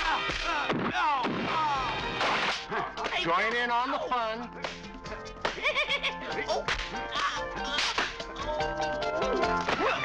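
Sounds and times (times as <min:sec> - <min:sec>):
background music: 0:00.0 - 0:10.0
sharp slaps and whacks: 0:02.2 - 0:03.2, 0:06.6 - 0:07.0, 0:07.8 - 0:08.2.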